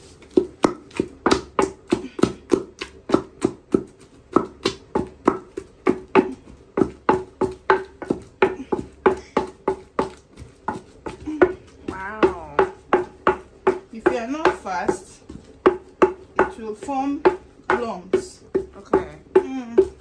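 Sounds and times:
wooden pestle pounding in mortar: 0.0 - 20.0.

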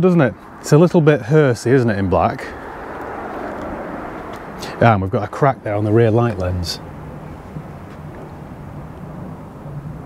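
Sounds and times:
distant vehicle engine drone: 0.0 - 10.0.

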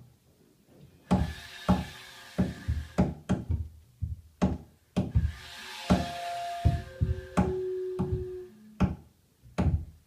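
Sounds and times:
sharp knocking strikes: 1.1 - 9.0
organ pipe held tone: 6.6 - 8.8.

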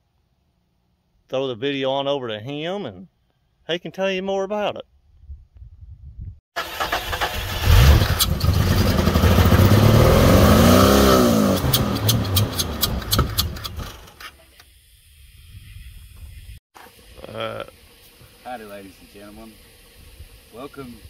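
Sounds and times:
engine cranking and starting: 6.6 - 10.0, 11.1 - 14.2
engine popping: 6.6 - 14.2
engine revving: 6.6 - 14.2.

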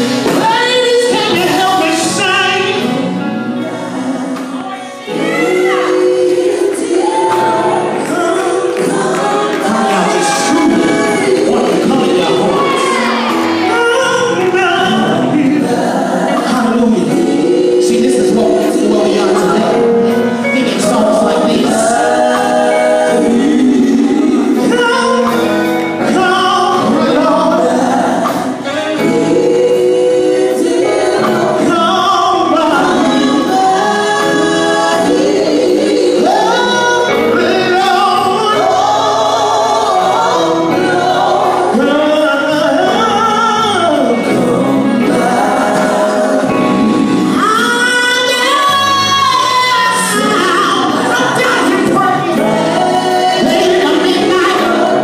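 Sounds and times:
women's vocal group singing gospel: 0.0 - 55.0.

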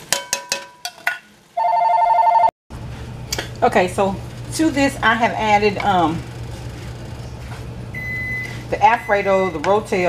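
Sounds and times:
electronic ringing tone: 1.6 - 2.5.

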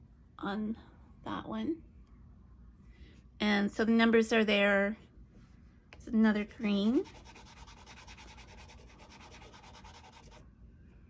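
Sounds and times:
pastel scratching on paper: 6.8 - 10.4.

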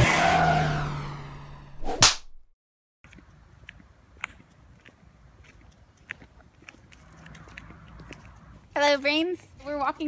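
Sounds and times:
short sharp whoosh: 0.7 - 2.5.

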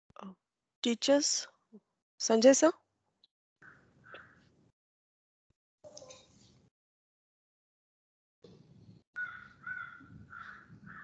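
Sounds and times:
bird calling: 9.2 - 11.0.

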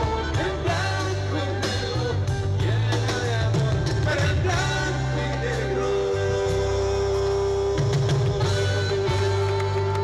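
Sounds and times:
bass line: 0.0 - 10.0
drum beats: 0.0 - 10.0.

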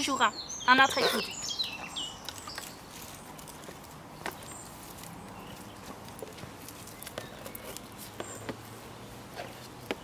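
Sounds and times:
quiet outdoor background noise: 0.0 - 10.0.

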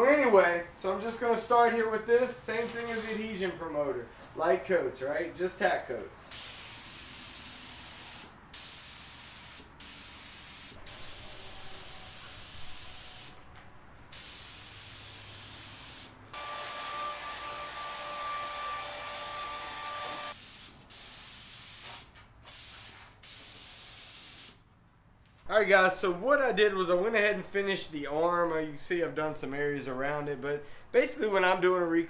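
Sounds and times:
spray gun hissing: 6.3 - 13.4, 14.1 - 16.2, 20.2 - 24.6.

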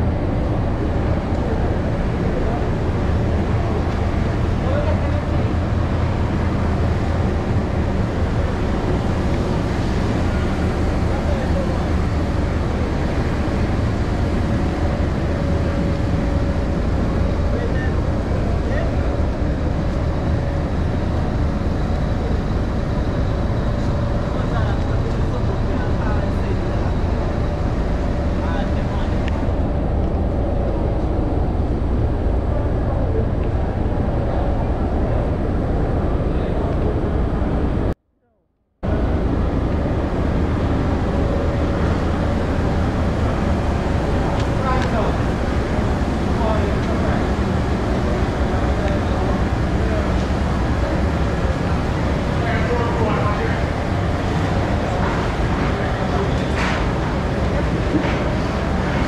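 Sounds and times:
steady low rumble: 0.0 - 59.0.

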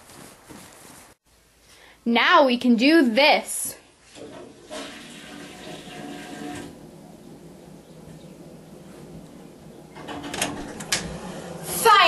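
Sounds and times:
woman speaking: 2.0 - 3.8, 11.6 - 12.0.

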